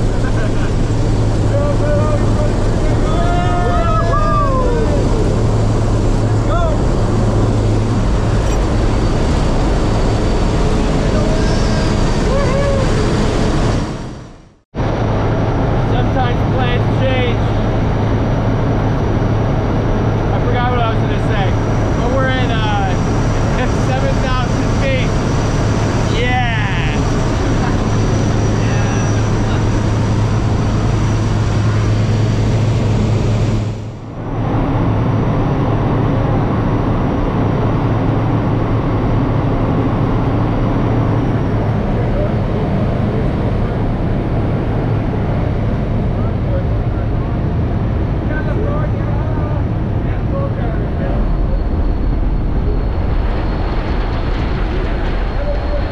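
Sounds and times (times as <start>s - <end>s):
raised voices: 0.0s - 7.2s, 10.7s - 13.4s, 26.0s - 30.3s
plane engine drone in cabin: 0.0s - 55.9s
wind rush: 0.0s - 55.9s.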